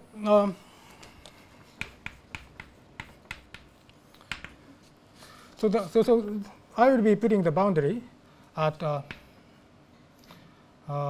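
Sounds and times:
chalk tapping on blackboard: 1.6 - 4.6.

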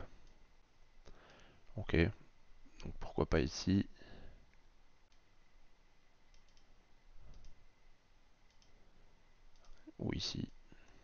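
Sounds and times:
computer mouse clicks: 5.1 - 5.3, 6.3 - 7.6, 8.4 - 8.8, 9.5 - 9.9.

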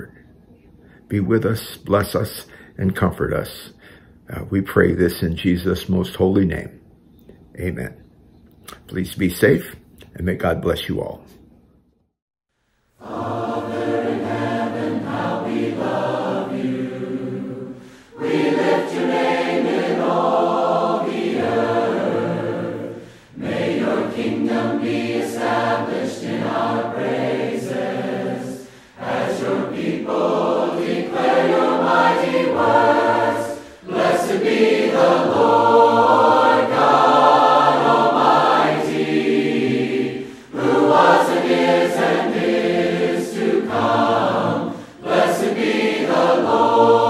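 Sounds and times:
choir singing: 13.0 - 47.0.

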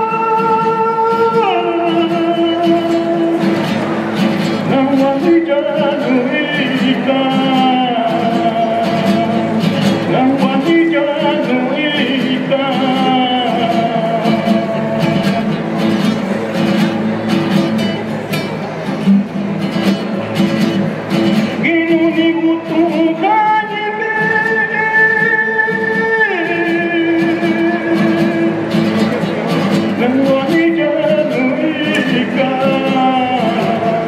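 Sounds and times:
man singing into a microphone: 0.0 - 16.4, 21.2 - 34.0
acoustic guitars strumming: 0.0 - 34.0.

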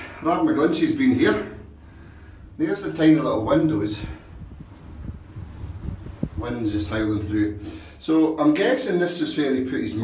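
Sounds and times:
wind howling through openings: 0.0 - 8.2
wind gusts buffeting microphone: 2.5 - 7.7.

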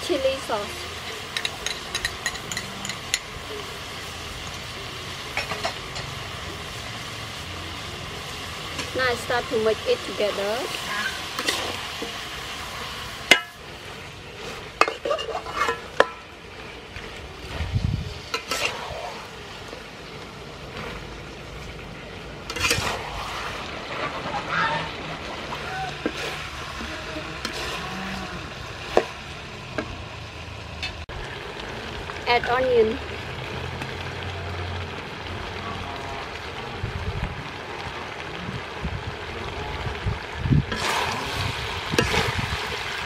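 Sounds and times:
chicken sizzling: 0.0 - 43.0
ladle scraping wok: 0.2 - 31.0, 40.6 - 43.0.

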